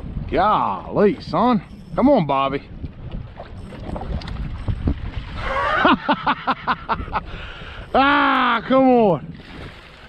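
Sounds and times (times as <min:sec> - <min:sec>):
wind buffeting microphone: 0:00.0 - 0:10.0
water slapping boat hull: 0:02.7 - 0:06.4, 0:08.3 - 0:10.0.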